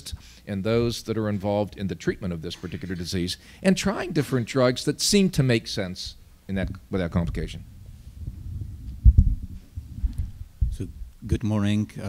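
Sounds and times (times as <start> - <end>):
microphone handling thumps: 6.6 - 11.2.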